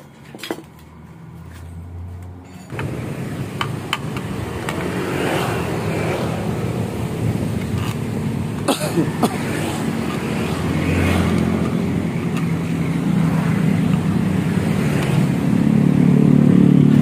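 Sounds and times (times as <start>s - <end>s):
engine running: 0.7s - 17.0s.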